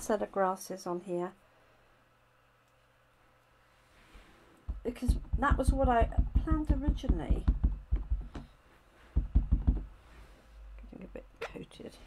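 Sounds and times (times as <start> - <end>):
stamp knocking on ink pad: 4.7 - 8.5, 9.2 - 9.9.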